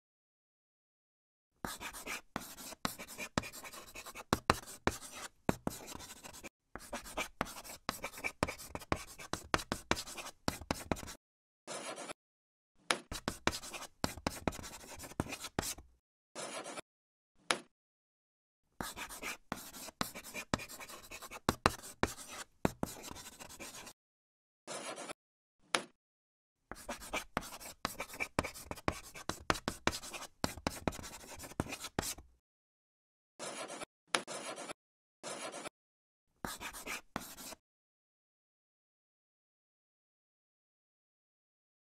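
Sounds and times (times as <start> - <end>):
chalk scratching on chalkboard: 1.7 - 12.2, 13.1 - 16.8, 18.8 - 24.0, 24.7 - 25.2, 26.7 - 32.3, 33.4 - 35.7, 36.5 - 37.6.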